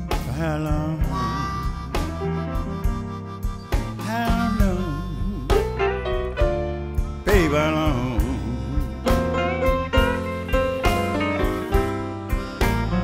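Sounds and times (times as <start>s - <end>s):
bass: 0.0s - 13.0s
drums: 0.0s - 13.0s
piano: 0.0s - 13.0s.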